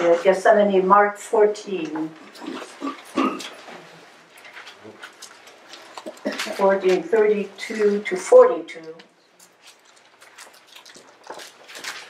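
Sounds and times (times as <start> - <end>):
person coughing: 2.4 - 3.6.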